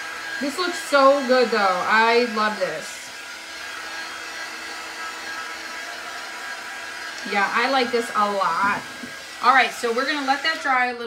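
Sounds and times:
heat gun blowing: 0.0 - 11.0.

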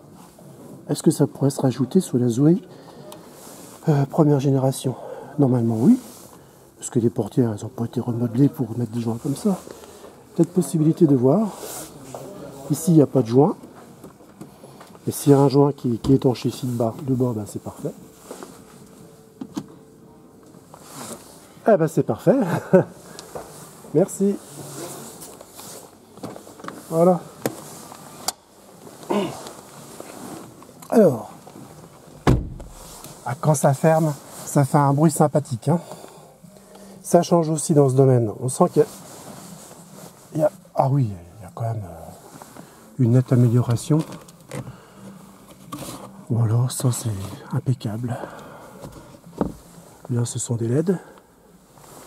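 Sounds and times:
sun visor scraping rustle: 32.4 - 33.2.

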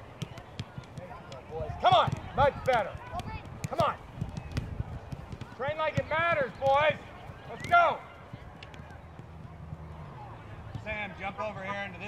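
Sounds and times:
balls kicked on artificial turf: 0.0 - 10.0, 10.6 - 12.0.

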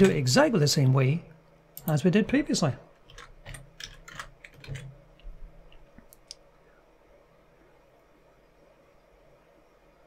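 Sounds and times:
computer keyboard keystrokes: 3.1 - 4.9.

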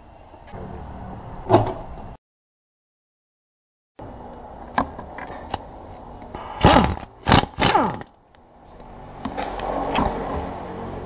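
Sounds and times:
pneumatic impact wrench bursts: 6.4 - 8.1.

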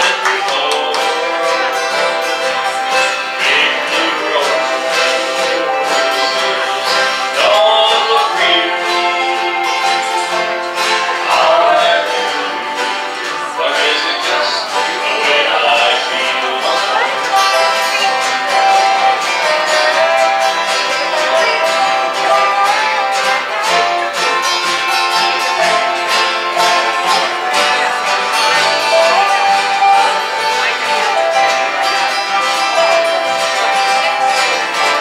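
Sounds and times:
acoustic string-band music: 0.0 - 35.0
mandolin: 0.0 - 35.0
sliding melody line: 0.0 - 35.0.

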